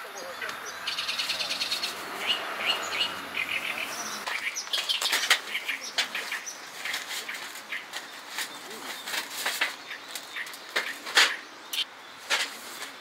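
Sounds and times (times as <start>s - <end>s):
wild birds chirping: 0.0s - 13.0s
sharp clicks of camping gear: 4.2s - 13.0s
camping gear rustling: 4.3s - 11.4s.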